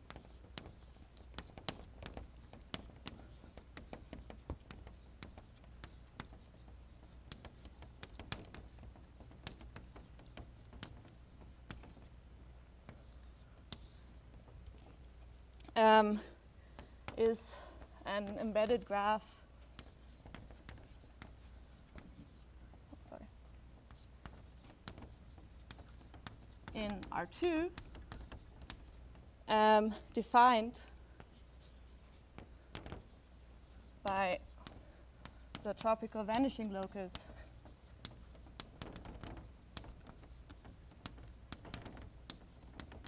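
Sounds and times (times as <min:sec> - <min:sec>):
chalk tapping and scratching: 0:00.0 - 0:12.2, 0:12.8 - 0:15.0, 0:16.1 - 0:30.1, 0:30.7 - 0:43.0.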